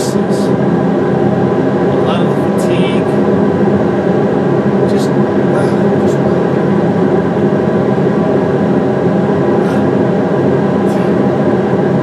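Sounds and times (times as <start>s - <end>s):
industrial fan drone: 0.0s - 12.0s.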